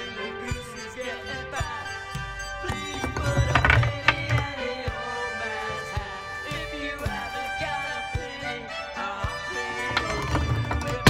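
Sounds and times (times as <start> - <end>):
background music: 0.0 - 11.0
wooden figures clacking: 2.6 - 4.8, 9.7 - 11.0.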